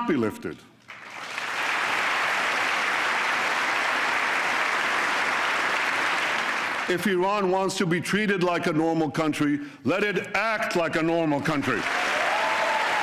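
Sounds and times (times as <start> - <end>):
audience applause: 0.9 - 6.9, 11.8 - 13.0
man talking: 6.9 - 11.8.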